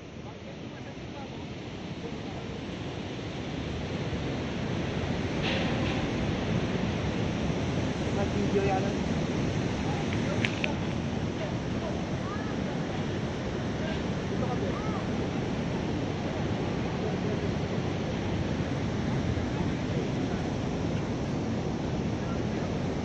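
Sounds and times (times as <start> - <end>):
water rushing over weir: 0.0 - 23.0
wind buffeting microphone: 1.3 - 23.0.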